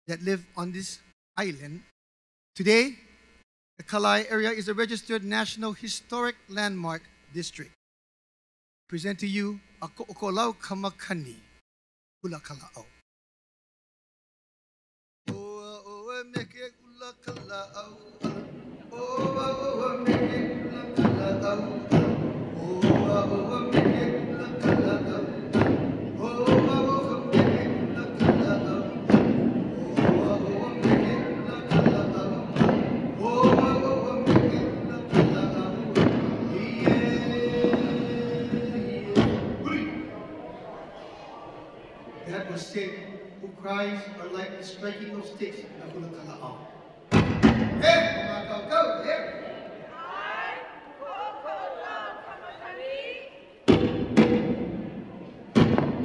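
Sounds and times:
person chanting: 0:15.3 - 0:40.4
wooden sticks struck rhythmically: 0:18.2 - 0:39.6, 0:53.7 - 0:54.9.

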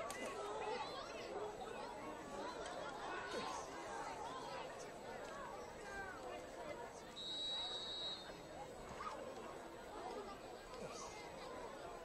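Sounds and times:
stadium crowd chatter: 0:00.0 - 0:12.0
referee's whistle: 0:07.2 - 0:08.4.

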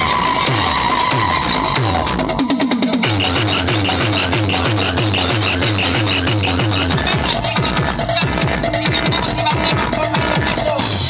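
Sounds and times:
bass kick beat: 0:00.0 - 0:11.0.

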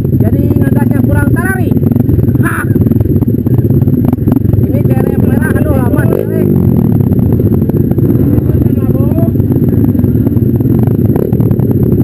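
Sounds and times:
motorcycles at low revs: 0:00.0 - 0:12.0.

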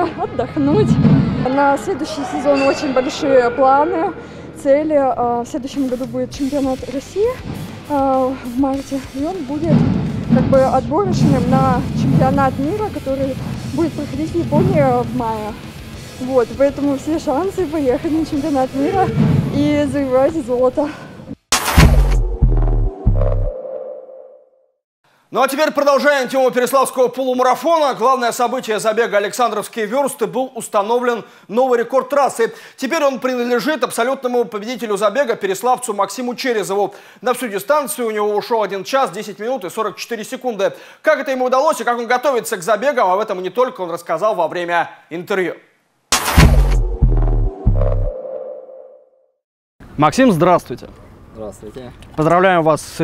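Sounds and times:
ringing tone: 0:01.9 - 0:04.8
heavy bass hit: 0:07.4 - 0:16.6, 0:21.5 - 0:23.5, 0:46.1 - 0:48.1.

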